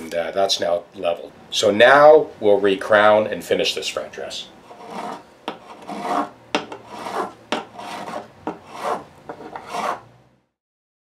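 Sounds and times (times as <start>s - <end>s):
file rasping over guitar frets: 4.7s - 10.0s.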